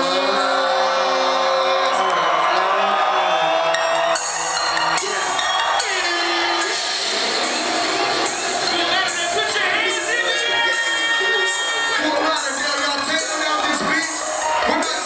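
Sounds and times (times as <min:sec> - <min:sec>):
crowd shouting and whooping: 0:00.0 - 0:15.0
hip-hop music through sound system: 0:00.0 - 0:15.0.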